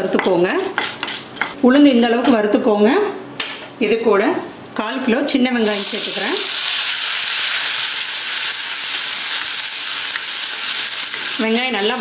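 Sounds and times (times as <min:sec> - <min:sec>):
lentils sizzling in oil: 0:05.6 - 0:12.0.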